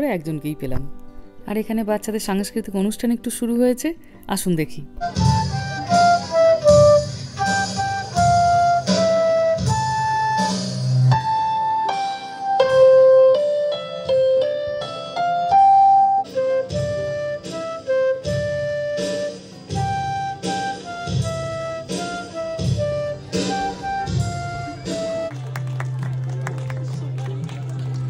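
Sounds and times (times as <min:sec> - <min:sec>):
keyboard accompaniment: 0:00.0 - 0:28.0
electronic drums: 0:05.0 - 0:11.2, 0:18.2 - 0:25.3
flute melody: 0:05.0 - 0:26.0
audience clapping: 0:24.8 - 0:28.0.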